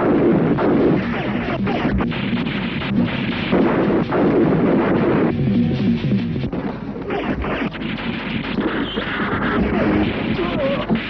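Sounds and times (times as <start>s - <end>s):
gunfire volley and blasts: 0.0s - 11.0s.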